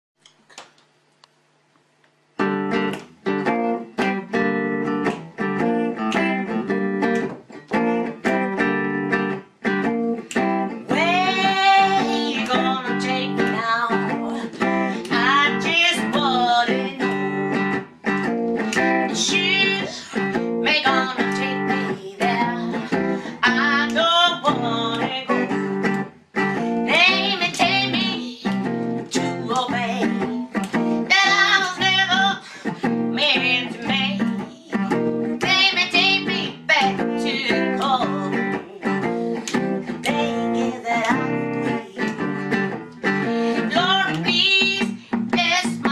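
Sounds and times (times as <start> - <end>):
amplified guitar blues riff: 2.4 - 45.9
gliding guitar melody: 2.4 - 45.9.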